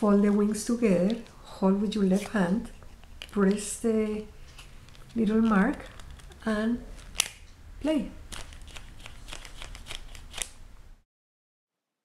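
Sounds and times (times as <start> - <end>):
paper clicks and rustles: 4.5 - 7.4, 8.3 - 10.6.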